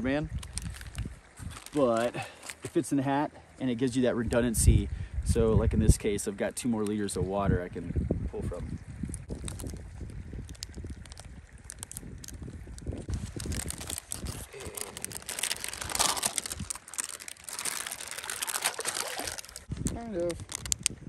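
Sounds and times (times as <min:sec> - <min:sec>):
plastic bag crinkling: 0:00.4 - 0:02.7, 0:10.4 - 0:20.9
trickling sloshing water: 0:07.7 - 0:20.9
packet tearing open: 0:10.4 - 0:12.4, 0:13.1 - 0:20.9.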